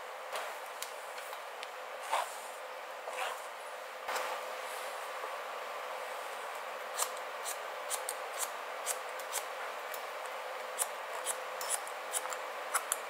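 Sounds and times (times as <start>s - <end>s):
steady background hiss: 0.0s - 13.0s
shears snipping hair: 6.9s - 13.0s.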